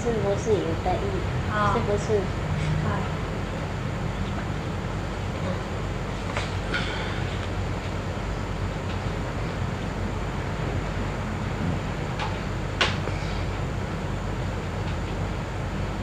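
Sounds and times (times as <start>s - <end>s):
electrical hum and hiss: 0.0s - 16.0s.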